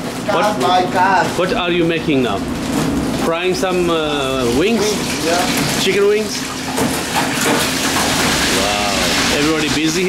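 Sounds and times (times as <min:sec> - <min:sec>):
chicken wings deep-frying: 0:02.4 - 0:10.0.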